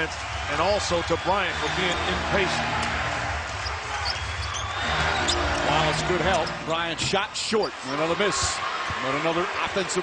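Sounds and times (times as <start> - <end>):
arena crowd noise: 0.0 - 10.0
sneaker squeaks: 3.6 - 7.9.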